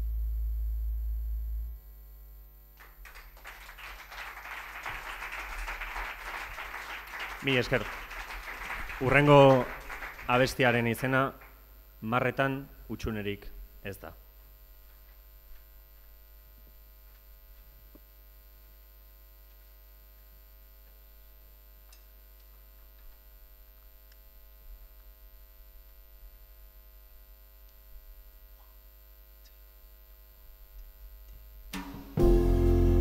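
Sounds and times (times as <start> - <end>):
electrical mains hum: 0.0 - 31.8.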